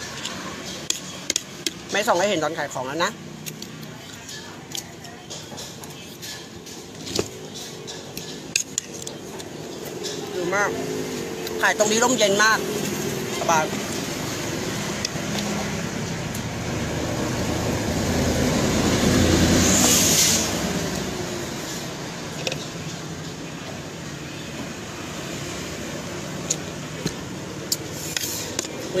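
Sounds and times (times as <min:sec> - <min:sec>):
street traffic: 0:00.0 - 0:29.0
vehicle passing by: 0:10.2 - 0:22.4, 0:24.7 - 0:29.0.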